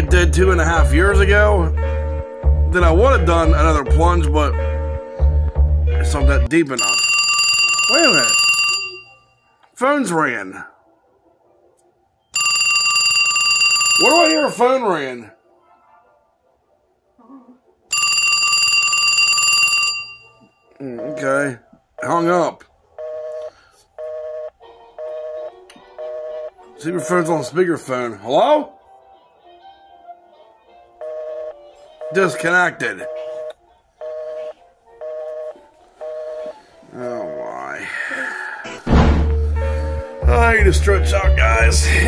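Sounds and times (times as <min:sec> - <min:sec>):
telephone busy signal: 0:06.8 - 0:09.2, 0:12.4 - 0:14.6, 0:31.0 - 0:32.4, 0:33.0 - 0:36.6
telephone ringing: 0:06.8 - 0:09.6, 0:12.4 - 0:14.8, 0:17.9 - 0:22.2, 0:23.0 - 0:27.3, 0:31.0 - 0:37.6.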